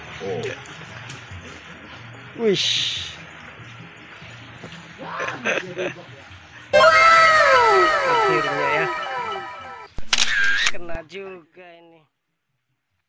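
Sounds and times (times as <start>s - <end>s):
falling pitched tones: 6.8s - 9.9s.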